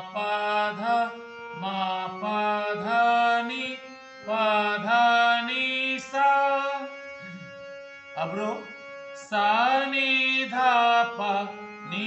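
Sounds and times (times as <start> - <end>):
man singing: 0.0 - 7.5, 8.2 - 12.0
harmonium: 0.0 - 12.0.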